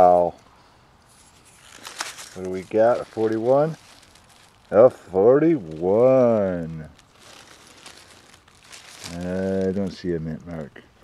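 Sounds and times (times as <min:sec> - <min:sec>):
hand rustling dry leaves: 0:01.0 - 0:10.7.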